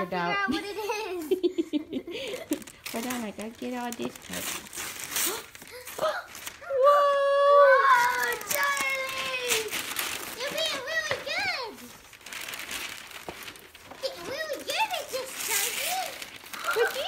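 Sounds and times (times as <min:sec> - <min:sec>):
paper rustling and crinkling: 0:02.3 - 0:06.8, 0:07.8 - 0:17.0
child's high-pitched vocal sounds: 0:05.2 - 0:11.9, 0:14.0 - 0:17.0.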